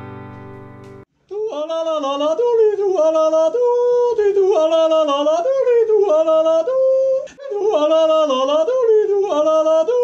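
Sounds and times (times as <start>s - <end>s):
held chord music: 0.0s - 1.0s.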